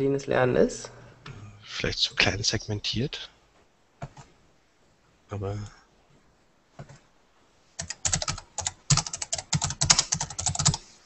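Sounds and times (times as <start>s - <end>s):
typing on computer keyboard: 7.8s - 10.8s.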